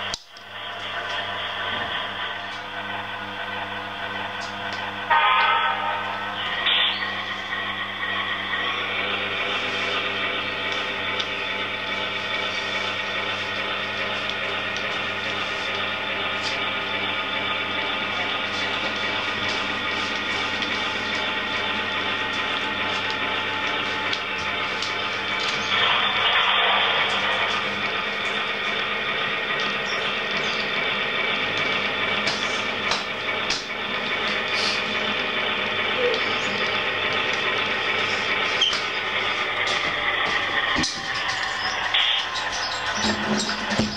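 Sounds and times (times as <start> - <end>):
model train whirring: 0.0 - 43.9
wheels clicking over track: 9.9 - 43.9.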